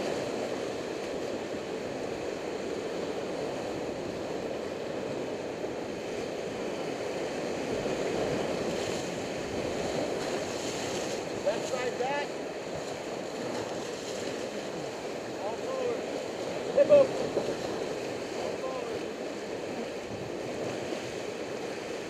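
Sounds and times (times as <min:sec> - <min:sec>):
whitewater rapids rushing: 0:00.0 - 0:22.0.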